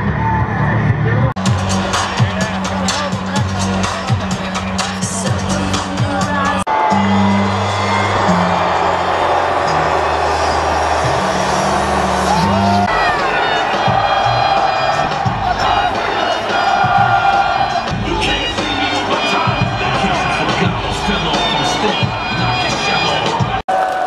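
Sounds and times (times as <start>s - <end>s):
entrance music over stadium speakers: 0.0s - 23.6s
crowd cheering and whooping: 6.7s - 24.0s.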